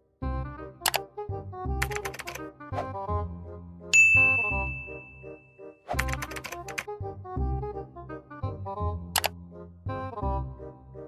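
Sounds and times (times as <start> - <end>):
light background music: 0.0 - 11.0
computer keyboard typing: 1.8 - 2.4, 6.0 - 6.9
bright ding: 4.0 - 5.4.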